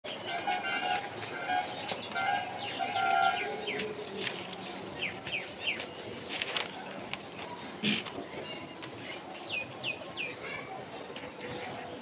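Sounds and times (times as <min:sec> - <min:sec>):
birds calling: 0:00.1 - 0:07.1.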